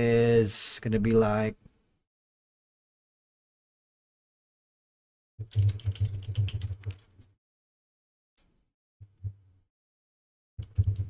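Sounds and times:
computer keyboard typing: 5.4 - 7.1.

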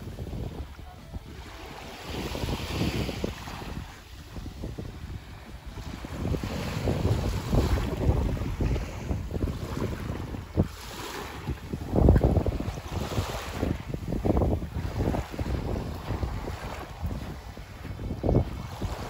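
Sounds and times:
small waves lapping on sand: 0.0 - 19.0
wind buffeting microphone: 0.0 - 19.0.

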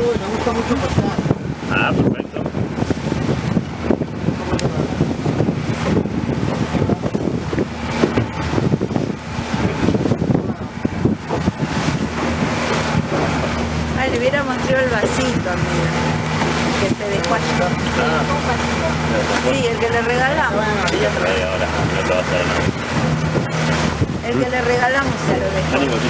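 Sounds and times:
boat engine humming: 0.0 - 26.0
water rushing past hull: 0.0 - 26.0
wind buffeting microphone: 0.0 - 26.0.

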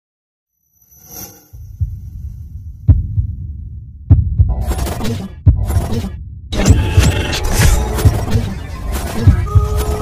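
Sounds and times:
deep heartbeat-like thuds: 1.7 - 8.4, 9.2 - 9.8.

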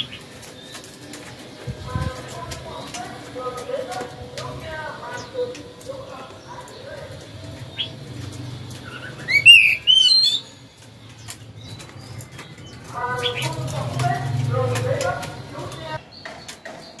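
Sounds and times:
bird whistling song: 8.8 - 12.4.

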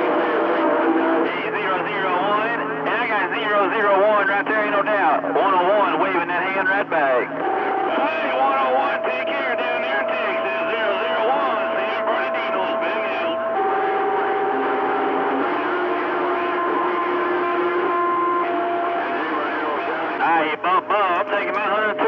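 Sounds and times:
garbled overlapping radio voices: 0.0 - 22.0
whistling radio carrier tones: 0.1 - 22.0.

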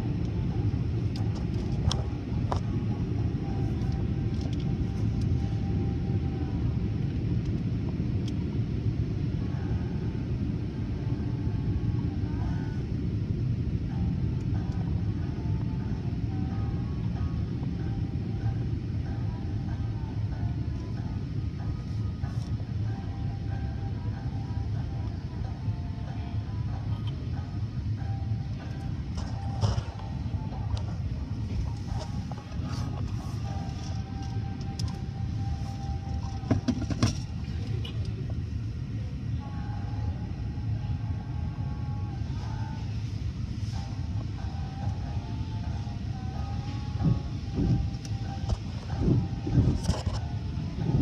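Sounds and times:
car wash machinery rumble: 0.0 - 51.0.

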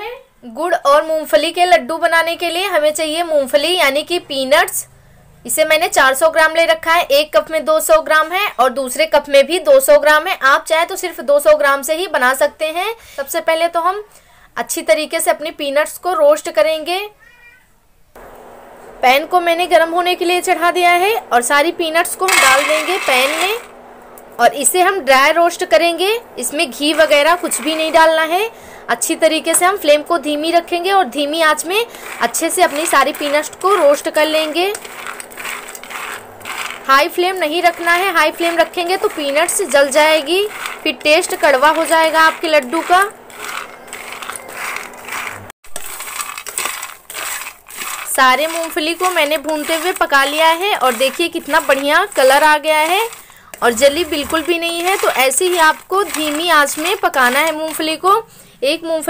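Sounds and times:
woman's voice: 0.0 - 4.9, 5.5 - 17.2, 19.0 - 23.7, 24.3 - 34.9, 36.8 - 44.2, 48.1 - 59.0
peanuts rattling in a pan: 20.4 - 23.7, 26.4 - 58.2.

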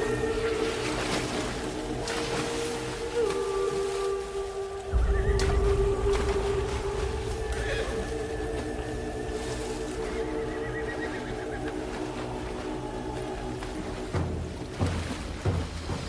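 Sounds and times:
sustained film score notes: 0.0 - 16.0
deep low swell: 4.4 - 14.6.

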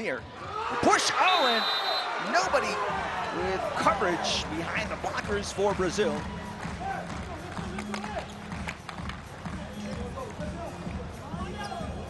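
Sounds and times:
pulsing arena music: 1.3 - 12.0.

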